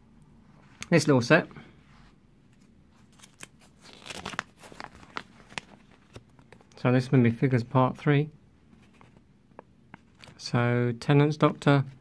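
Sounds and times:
paper rustling and crinkling: 0:02.5 - 0:06.8.

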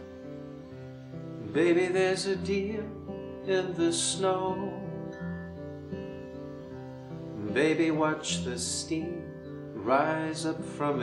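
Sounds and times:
acoustic guitar chords: 0:00.0 - 0:11.0.

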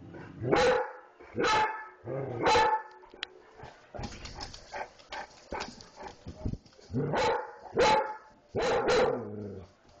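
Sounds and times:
dog barking: 0:00.5 - 0:02.9, 0:07.0 - 0:09.3.

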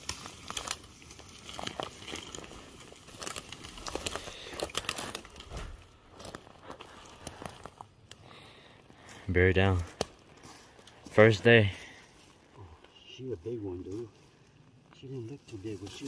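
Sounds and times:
footsteps on forest floor: 0:00.0 - 0:13.1
twigs crackling and snapping: 0:00.0 - 0:16.0.

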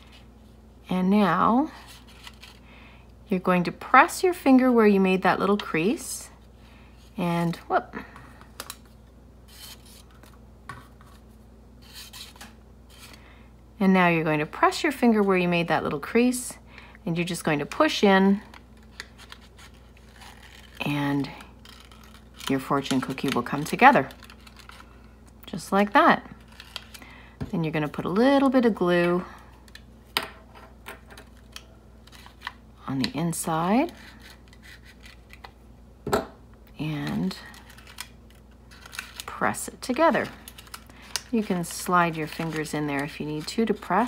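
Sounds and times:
paper rustling: 0:37.5 - 0:44.0.

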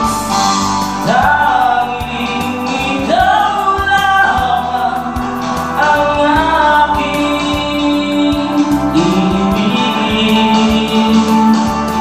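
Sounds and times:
karaoke backing track: 0:00.0 - 0:12.0
man singing a slow ballad: 0:01.0 - 0:12.0.

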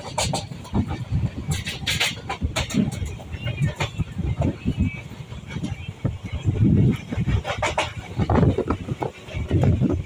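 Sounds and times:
train wheels clattering on rails: 0:00.0 - 0:10.0.

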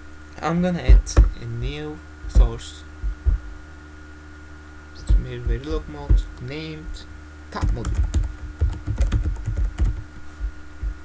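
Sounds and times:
steady low hum: 0:00.0 - 0:11.0
soft low thump: 0:00.9 - 0:01.4, 0:02.2 - 0:03.6, 0:05.0 - 0:06.4, 0:10.4 - 0:11.0.

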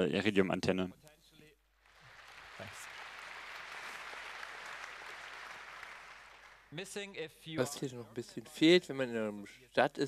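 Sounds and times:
audience applauding: 0:01.8 - 0:06.9.

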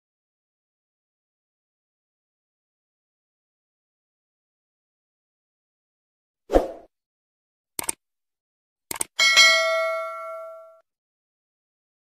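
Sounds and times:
mouse clicks: 0:07.8 - 0:08.0, 0:08.9 - 0:09.1
notification bell ding: 0:09.2 - 0:10.8.

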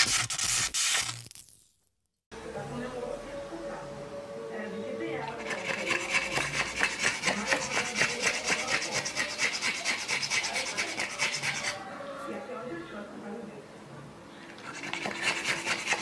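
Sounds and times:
dog panting rapidly: 0:05.4 - 0:11.8, 0:14.6 - 0:16.0.

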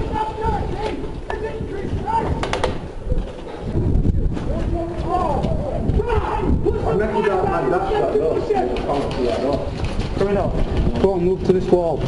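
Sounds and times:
airsoft gun shots: 0:02.4 - 0:02.9.

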